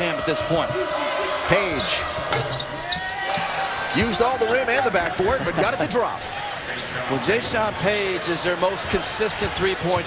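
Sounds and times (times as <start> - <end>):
arena crowd din: 0.0 - 10.0.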